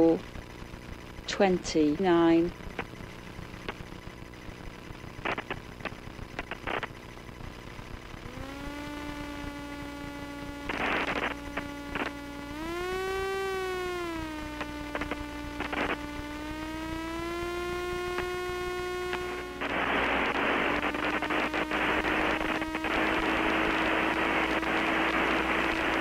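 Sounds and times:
steady humming tone: 0.0 - 26.0
clicks: 3.6 - 3.9, 5.2 - 6.9, 8.2 - 26.0.

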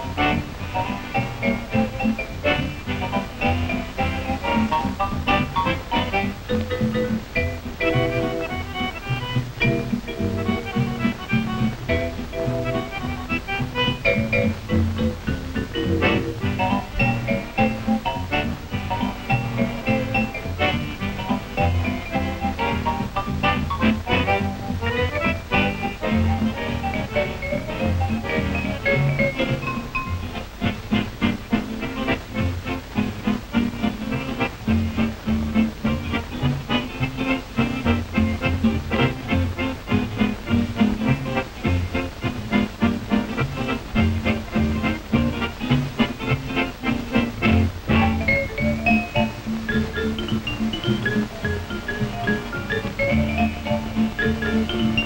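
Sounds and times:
swing jazz dance music: 0.0 - 55.0.

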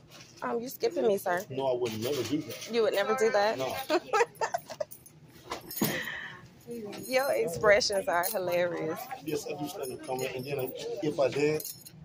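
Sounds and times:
person laughing: 3.8 - 5.0.

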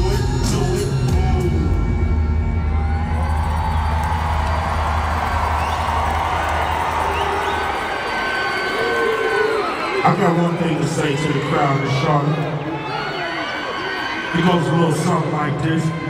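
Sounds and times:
hip-hop beat with heavy bass: 0.0 - 2.7
large crowd cheering: 1.0 - 16.0.

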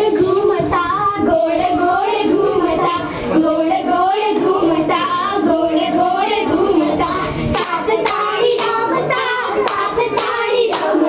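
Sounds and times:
girls singing in unison: 0.0 - 11.0
sharp hand claps: 7.6 - 8.8, 9.6 - 11.0.

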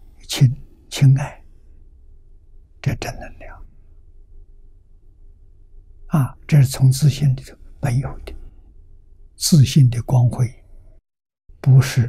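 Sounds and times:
low background hum: 0.0 - 11.0
elderly man speaking: 0.2 - 1.4, 2.8 - 3.6, 6.1 - 8.5, 9.4 - 10.6, 11.6 - 12.0.

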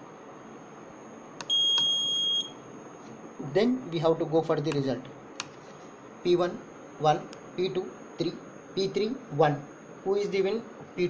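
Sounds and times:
high-pitched buzzer beep: 1.4 - 2.6.

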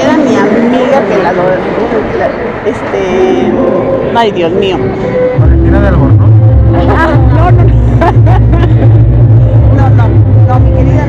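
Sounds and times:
crowd chatter: 0.0 - 11.0
steady low drone: 0.0 - 11.0.

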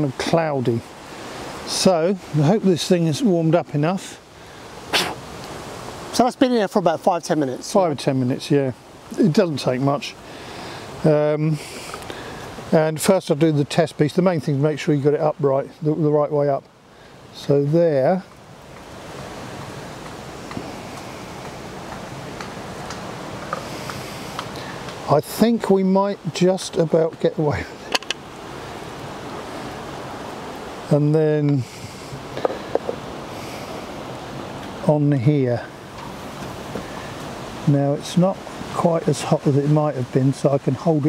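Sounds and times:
steady hiss: 0.0 - 41.0.

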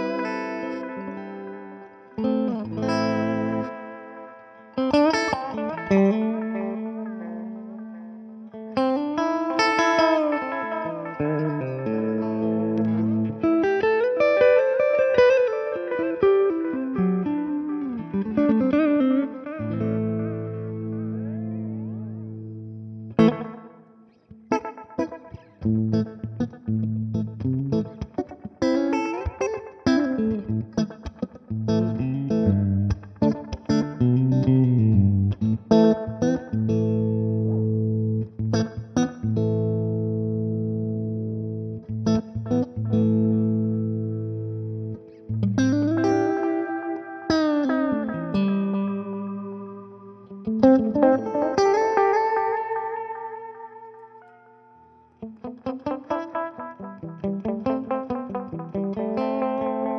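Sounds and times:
electric guitar with delay: 0.0 - 59.9.

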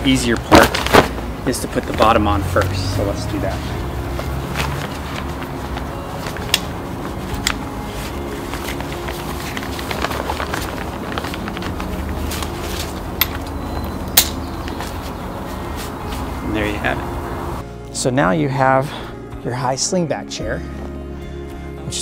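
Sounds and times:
fabric seat rustling: 0.4 - 2.1, 3.4 - 13.6, 14.6 - 16.9.

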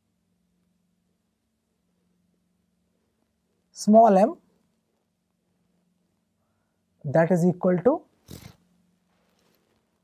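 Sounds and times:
faint low electrical hum: 0.0 - 10.0
person breathing: 6.4 - 7.0.

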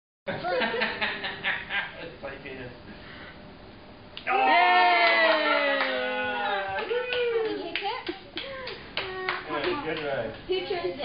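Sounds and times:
sharp claps or taps: 6.8 - 10.5.

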